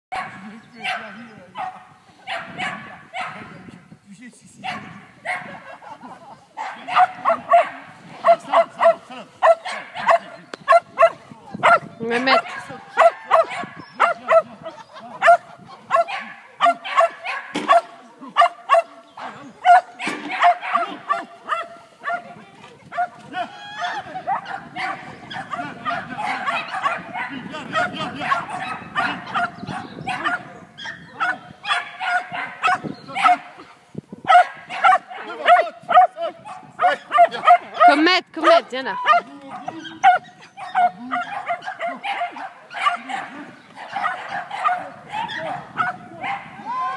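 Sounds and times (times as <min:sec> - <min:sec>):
dog barking excitedly: 0:00.1 - 0:03.4, 0:04.6 - 0:05.8, 0:06.6 - 0:22.3, 0:23.8 - 0:46.6.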